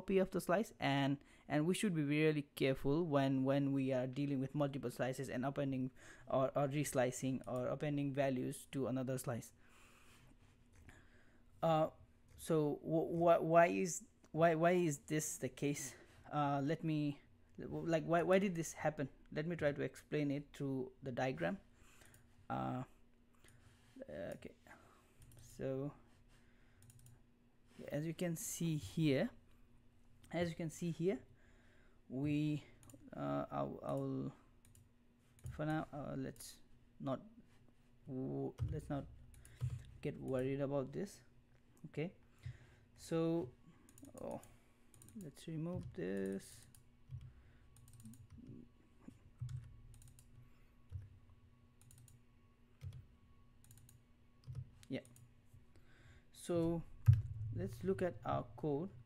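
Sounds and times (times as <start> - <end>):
person speaking: 0.0 - 9.6, 11.6 - 21.7, 22.4 - 23.0, 23.9 - 26.2, 27.7 - 29.5, 30.2 - 31.3, 32.1 - 34.5, 35.4 - 42.2, 43.0 - 47.2, 54.8 - 55.2, 56.3 - 59.0
low steady hum: 0.0 - 59.0
computer input clicks: 43.9 - 48.5, 49.4 - 51.1, 51.8 - 52.2, 52.8 - 55.3.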